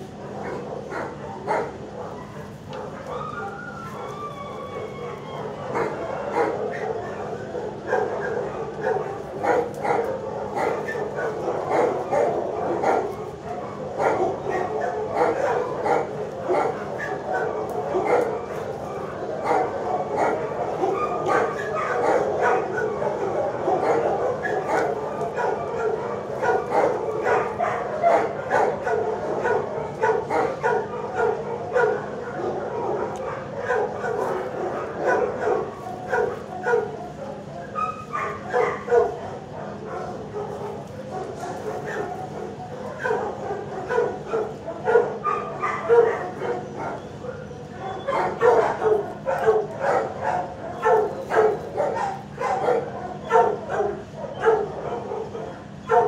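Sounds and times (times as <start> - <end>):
many dogs barking: 0.0 - 56.0.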